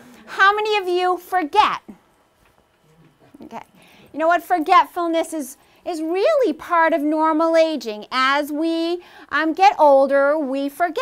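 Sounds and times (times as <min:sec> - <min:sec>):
woman speaking: 0:00.0 - 0:02.0, 0:03.3 - 0:11.0.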